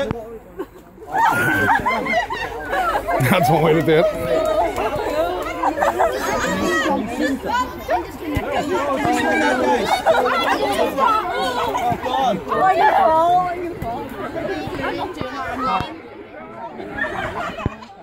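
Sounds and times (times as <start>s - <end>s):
group of people chattering: 0.0s - 18.0s.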